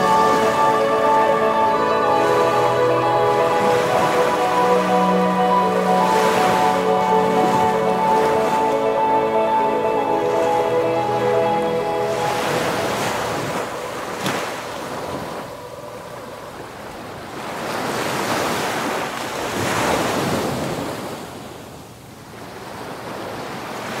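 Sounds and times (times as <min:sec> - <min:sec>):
ocean waves breaking: 0:00.0 - 0:21.4.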